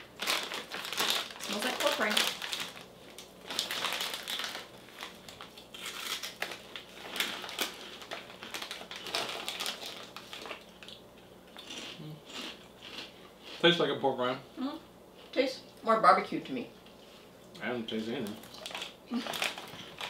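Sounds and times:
snack bag crinkling: 0.0s - 13.1s, 18.0s - 20.0s.

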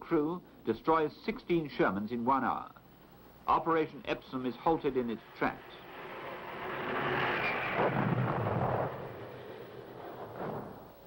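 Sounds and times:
artillery fire and explosions: 6.8s - 11.0s.

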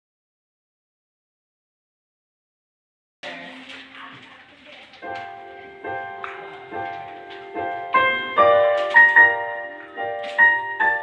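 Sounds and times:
piano chords ringing: 5.0s - 11.0s.

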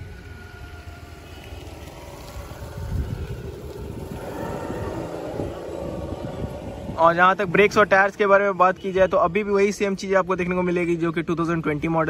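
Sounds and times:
passing road vehicle rumble: 0.0s - 10.6s
wind buffeting microphone: 0.0s - 12.0s.

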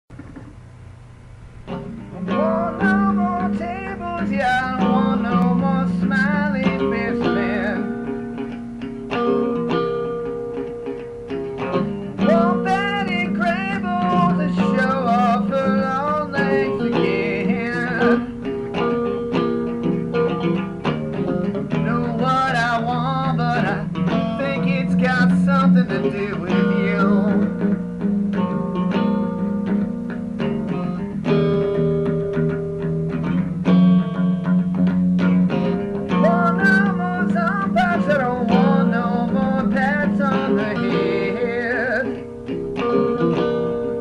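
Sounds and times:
bending lead guitar melody: 0.1s - 44.0s
guitar chords: 0.1s - 44.0s.

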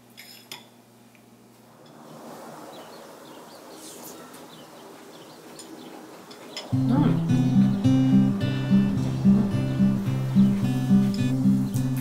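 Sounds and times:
soft outdoor hiss: 0.0s - 12.0s
faint birds chirping: 1.9s - 12.0s.

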